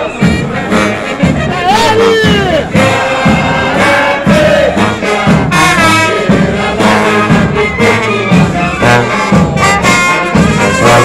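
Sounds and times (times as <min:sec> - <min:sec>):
brass band playing a march: 0:00.0 - 0:11.0
steady drum beat: 0:00.0 - 0:11.0.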